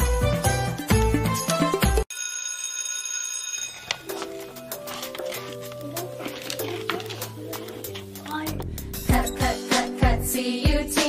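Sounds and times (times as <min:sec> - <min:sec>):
background music with steady beat: 0:00.0 - 0:02.1, 0:04.0 - 0:11.0
bright ringing chime: 0:02.1 - 0:04.5
song playing quietly: 0:04.0 - 0:11.0.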